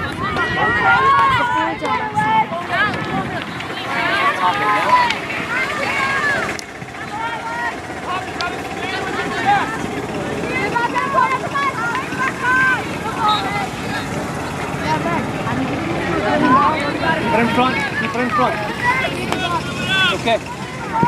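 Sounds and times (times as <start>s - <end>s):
players and spectators shouting: 0.0s - 21.0s.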